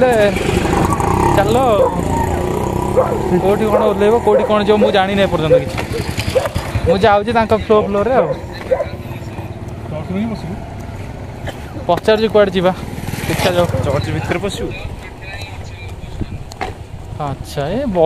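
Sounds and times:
vehicle engine running: 0.0s - 17.4s
men talking: 0.0s - 18.0s.

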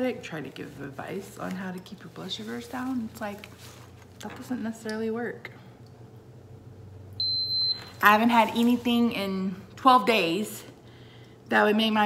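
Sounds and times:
glucose meter beep: 7.2s - 8.0s.

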